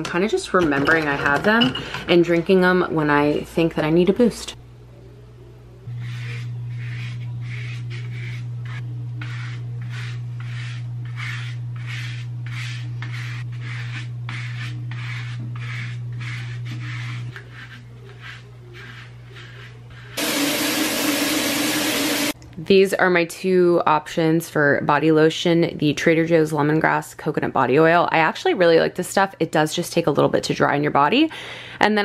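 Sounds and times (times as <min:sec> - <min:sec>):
body brush scrubbing skin: 0:06.0 - 0:22.4
shower water rushing: 0:20.2 - 0:22.4.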